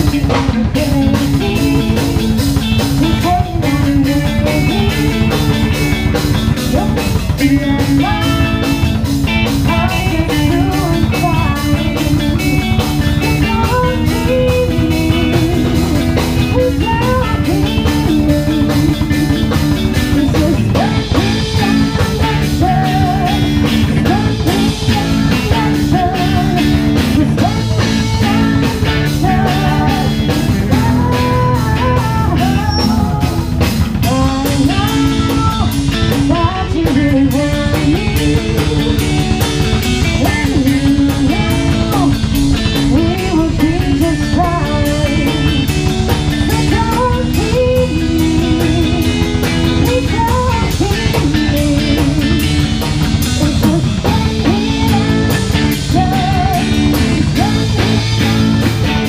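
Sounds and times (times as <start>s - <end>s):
woman singing into microphone: 0.0s - 2.4s, 3.0s - 59.0s
bass guitar: 0.0s - 59.0s
drum kit steady beat: 0.0s - 59.0s
electric guitars: 0.0s - 59.0s.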